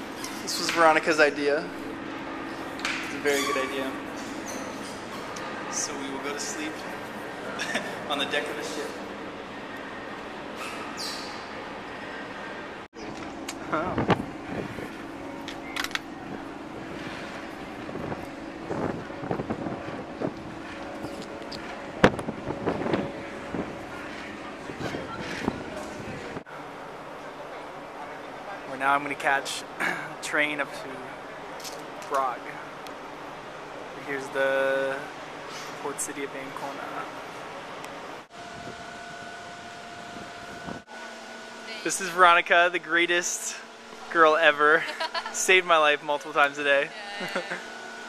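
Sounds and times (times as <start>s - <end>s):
steady hum: 0.0s - 27.2s, 27.8s - 48.0s
ferry engines droning: 0.0s - 48.0s
wind: 0.0s - 48.0s
wind buffeting microphone: 13.7s - 15.2s, 16.2s - 26.4s.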